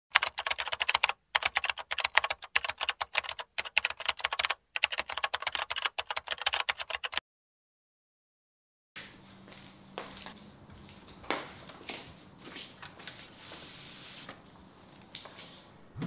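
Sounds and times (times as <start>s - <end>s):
rapid typing on a keyboard: 0.1s - 7.2s.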